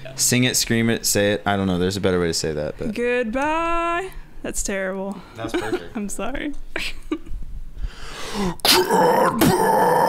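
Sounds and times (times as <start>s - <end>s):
sharp breath: 7.8s - 8.6s.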